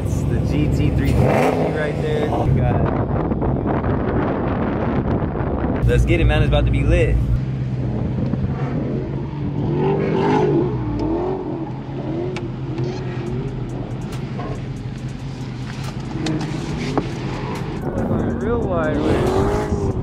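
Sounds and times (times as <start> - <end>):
car engine rumbling: 0.0 - 20.0.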